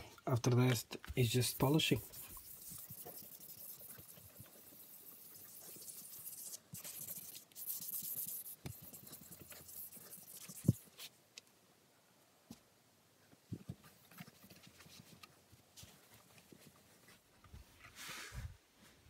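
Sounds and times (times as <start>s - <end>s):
sandpaper rubbing on wood finish: 1.2s - 11.0s.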